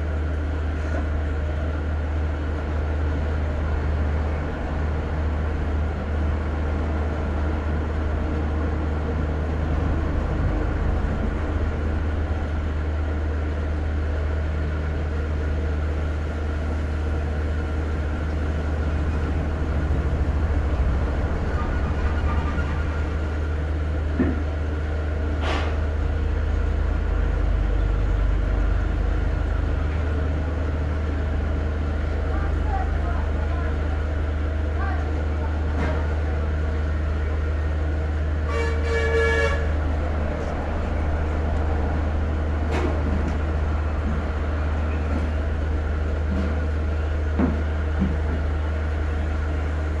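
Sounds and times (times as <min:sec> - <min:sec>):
horn-like tone: 0:21.5 - 0:23.2, 0:38.5 - 0:39.7.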